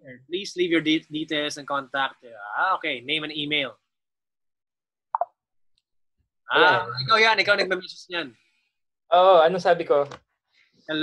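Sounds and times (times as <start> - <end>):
chat message pop: 5.1 - 5.4.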